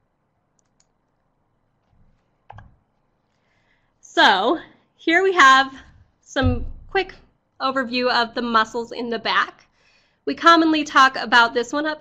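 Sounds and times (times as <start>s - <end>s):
computer mouse clicking: 0.5s - 1.2s, 1.8s - 2.8s.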